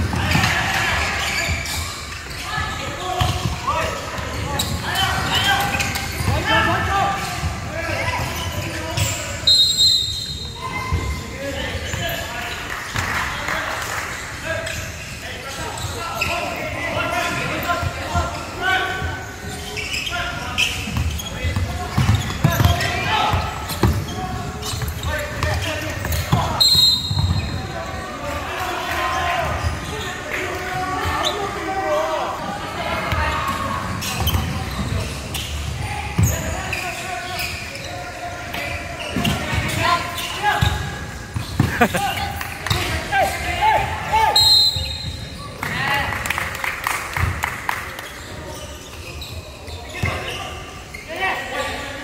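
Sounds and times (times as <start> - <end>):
basketball bouncing on court: 20.9 - 27.6, 40.6 - 42.0.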